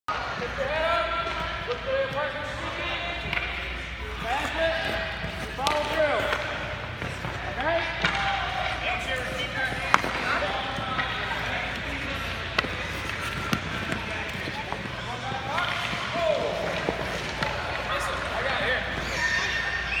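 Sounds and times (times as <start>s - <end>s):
hockey stick striking puck: 4.8s - 19.1s.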